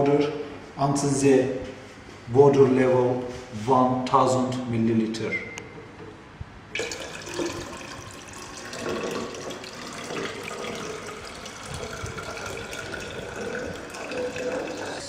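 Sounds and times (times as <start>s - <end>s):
water pouring into a cylinder: 6.7s - 15.0s.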